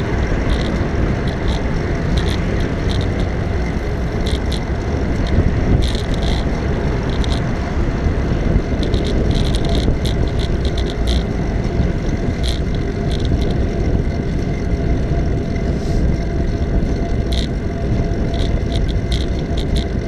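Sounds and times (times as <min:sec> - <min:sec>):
tyre and road rumble: 0:00.0 - 0:20.0
wind buffeting microphone: 0:00.0 - 0:20.0.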